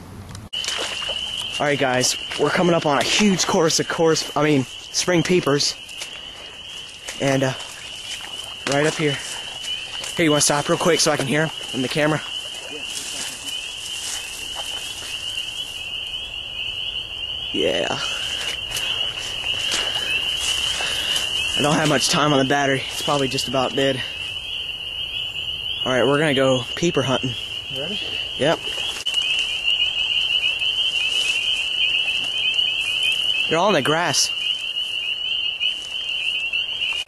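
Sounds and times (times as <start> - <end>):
chorus of frogs peeping: 0.5 - 37.0.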